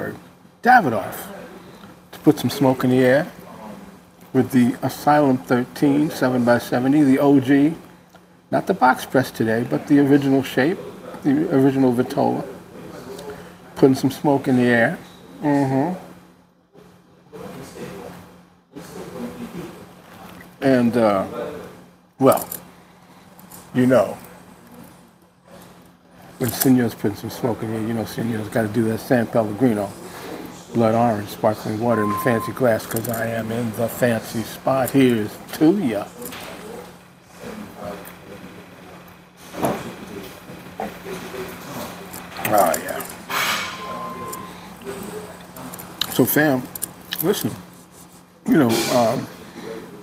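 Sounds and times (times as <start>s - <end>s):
steady low hum: 0.0s - 50.0s.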